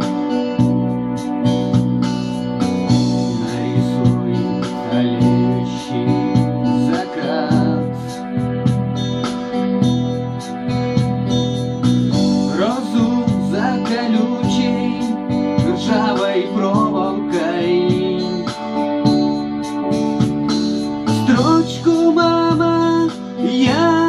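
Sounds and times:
steady drum beat: 0:00.0 - 0:24.0
synthesizer guitar-like lead: 0:00.0 - 0:24.0
synthesizer held chords: 0:00.0 - 0:24.0.

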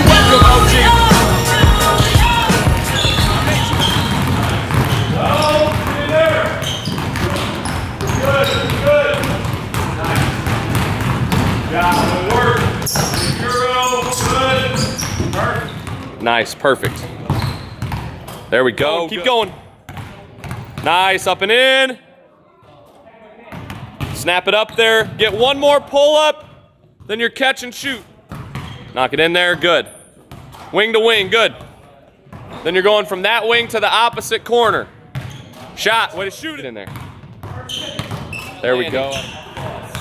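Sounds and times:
basketballs bouncing on wooden floor: 0:00.0 - 0:16.2, 0:16.8 - 0:21.1, 0:23.5 - 0:25.6, 0:28.3 - 0:32.6, 0:35.1 - 0:35.9, 0:36.8 - 0:40.0.

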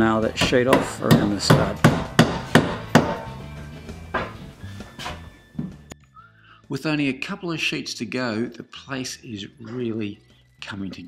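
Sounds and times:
background music: 0:00.0 - 0:11.0
hammer striking nails: 0:00.4 - 0:03.4.

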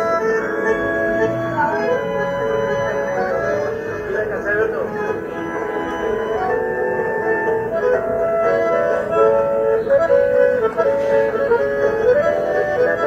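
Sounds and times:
bandoneon melody: 0:00.0 - 0:13.0.

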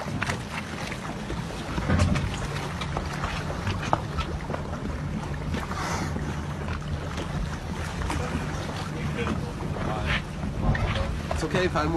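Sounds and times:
boat engine idling: 0:00.0 - 0:11.9.

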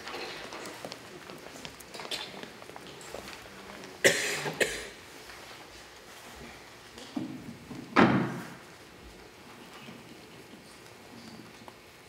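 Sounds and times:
man coughing into microphone: 0:04.0 - 0:05.0.

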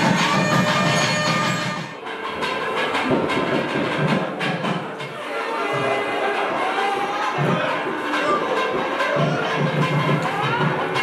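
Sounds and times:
percussion clatter: 0:00.0 - 0:11.0
reed pipe melody: 0:00.0 - 0:11.0.

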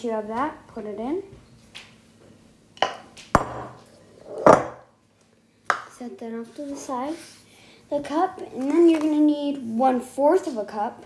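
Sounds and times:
plastic cup knocking glass bowl: 0:02.8 - 0:03.8.

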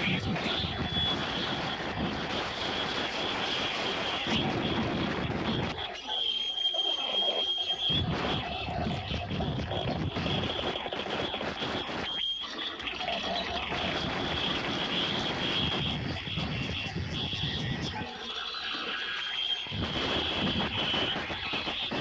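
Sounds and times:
rumbling noise wash: 0:19.6 - 0:22.0.

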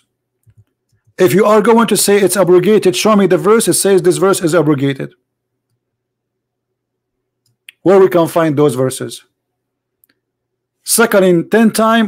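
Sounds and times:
man speaking: 0:01.2 - 0:05.2, 0:07.7 - 0:09.3, 0:10.8 - 0:12.0.

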